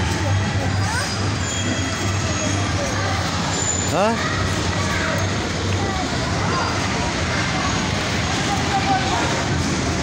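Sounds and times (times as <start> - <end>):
busy outdoor walkway noise: 0.0 - 10.0.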